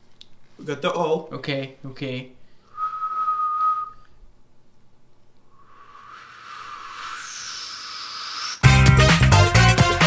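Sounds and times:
man attempting to whistle: 2.7s - 4.2s, 5.6s - 8.7s.

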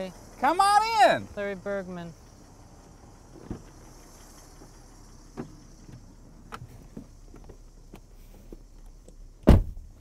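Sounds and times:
car door and seat knocks: 9.4s - 9.9s.

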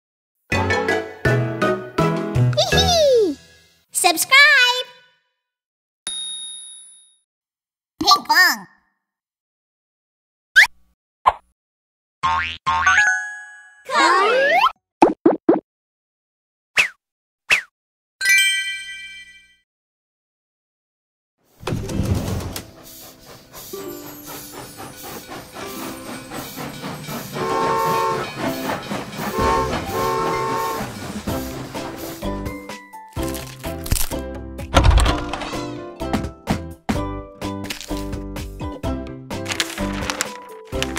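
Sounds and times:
toy train wheels clickety-clack: 21.9s - 32.3s, 39.5s - 40.9s
train whistle tooting: 27.3s - 31.5s.

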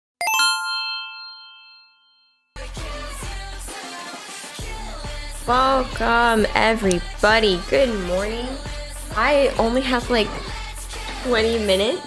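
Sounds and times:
bright chime: 0.2s - 2.5s.

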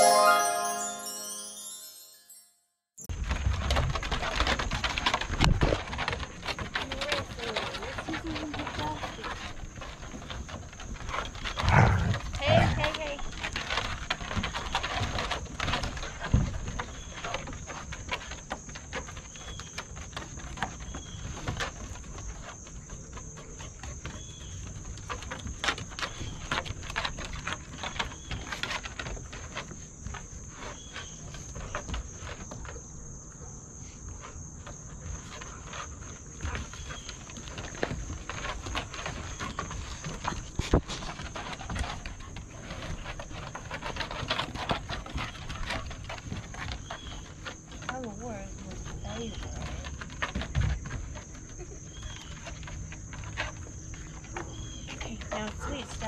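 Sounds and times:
paws scuffling on wooden deck: 3.1s - 33.1s, 34.1s - 56.0s.

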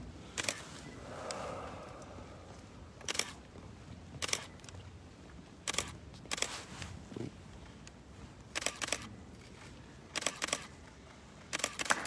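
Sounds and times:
camera shutters clicking: 0.4s - 0.6s, 3.0s - 3.4s, 4.2s - 4.5s, 5.6s - 6.5s, 8.5s - 9.1s, 10.1s - 10.7s, 11.5s - 12.0s.

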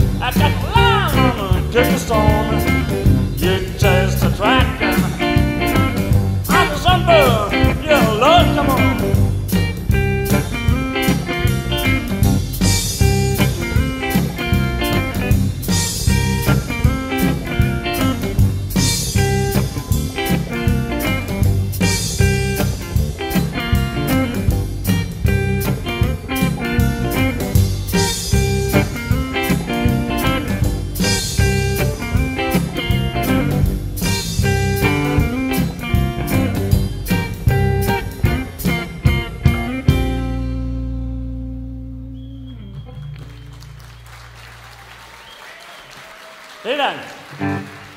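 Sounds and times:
blues-rock band playing: 0.0s - 45.2s, 47.2s - 47.9s.

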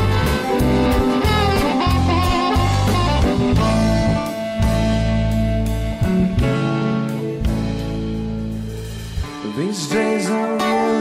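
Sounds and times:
drums with steady cymbal beat: 0.0s - 10.0s
guitar: 0.0s - 11.0s
harmonica bending held notes: 0.0s - 11.0s.

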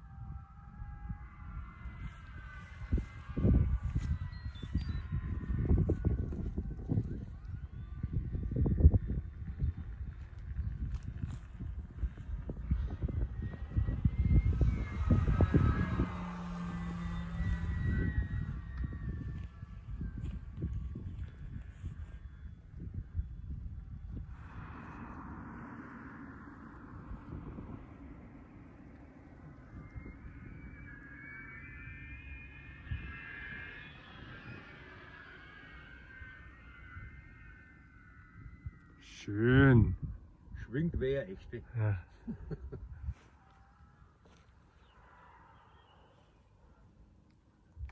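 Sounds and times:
wind buffeting microphone: 0.0s - 44.2s.

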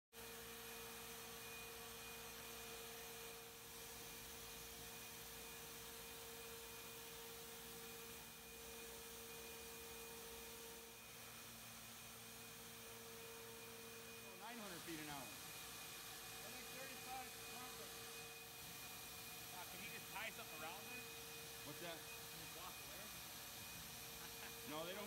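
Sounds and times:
shotblaster machine hum and whine: 0.7s - 25.0s.

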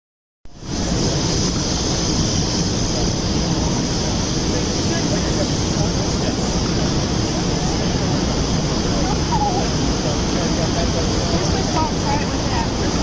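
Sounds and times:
street noise hiss and rumble: 0.5s - 13.0s.

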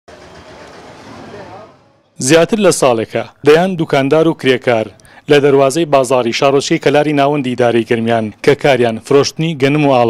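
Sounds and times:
traffic noise: 0.1s - 9.7s
men talking indistinctly: 1.4s - 10.0s.

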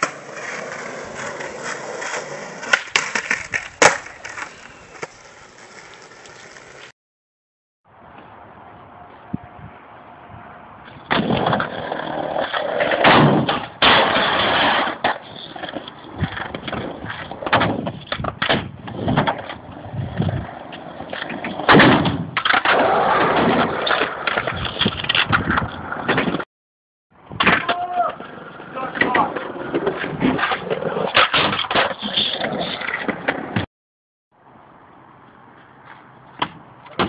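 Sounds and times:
skateboard rolling on concrete: 0.0s - 6.9s, 7.9s - 26.4s, 27.2s - 33.7s, 34.4s - 37.0s.

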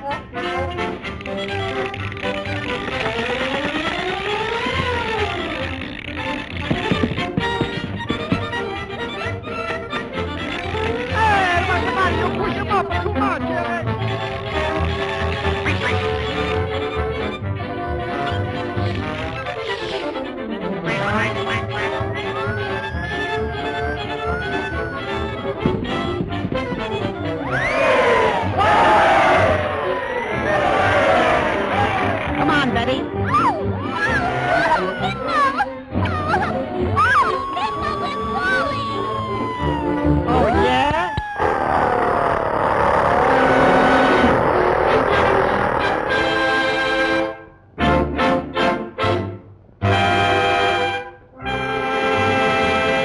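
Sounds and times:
music: 0.0s - 53.0s
cartoon voices shouting: 27.4s - 32.4s, 33.2s - 42.4s
low chugging pulse: 36.4s - 47.3s.

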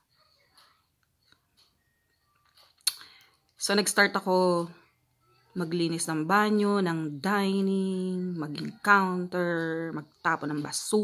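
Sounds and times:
lip and tongue clicks: 2.8s - 3.2s
sharp mouth click: 2.8s - 3.3s.

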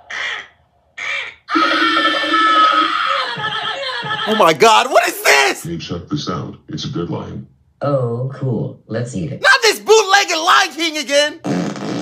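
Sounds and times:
cartoon bird caws: 0.0s - 3.2s
long falling cry: 1.0s - 4.2s.

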